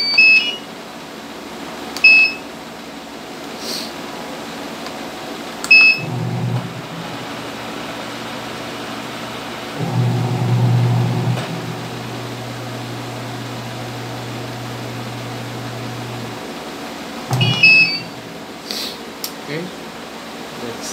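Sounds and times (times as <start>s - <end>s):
washing machine button beep: 0.0s - 0.7s, 2.0s - 2.4s, 5.6s - 6.6s, 17.3s - 18.2s
washing machine low electrical hum: 0.0s - 20.9s.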